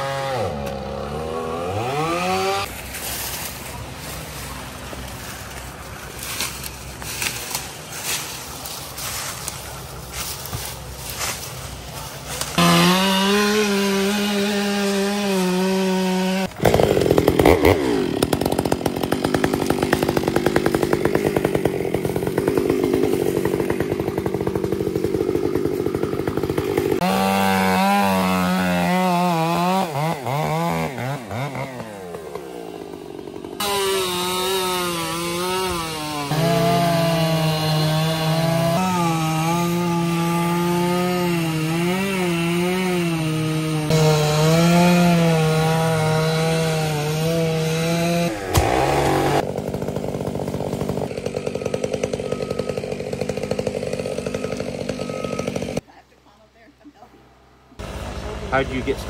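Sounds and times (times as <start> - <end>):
chainsaws cutting logs: 0.0 - 56.0.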